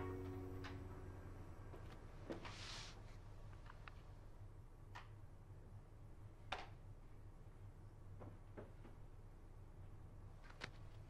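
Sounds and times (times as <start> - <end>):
short rustle: 2.3 - 3.7.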